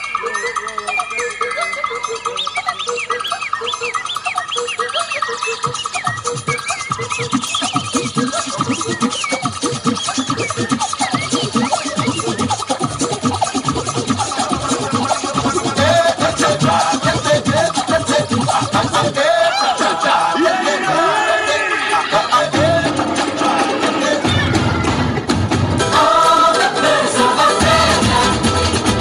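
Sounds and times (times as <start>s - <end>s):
dance music over sound system: 1.5s - 29.0s
heavy drum beat: 6.2s - 19.3s, 20.2s - 29.0s.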